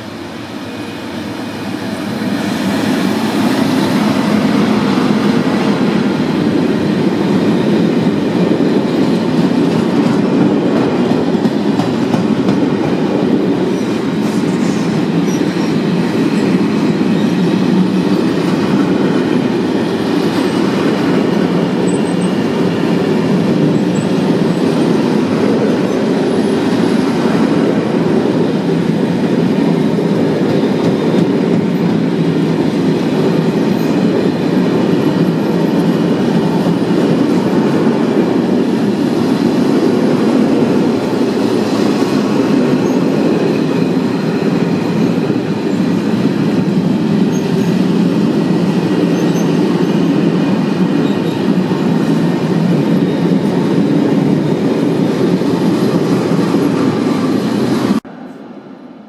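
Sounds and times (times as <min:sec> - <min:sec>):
freight train rolling past: 0:00.0 - 0:59.0.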